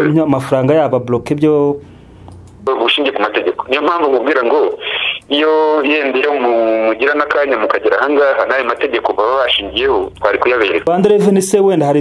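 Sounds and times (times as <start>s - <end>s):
people talking: 0.0s - 1.8s, 2.6s - 12.0s.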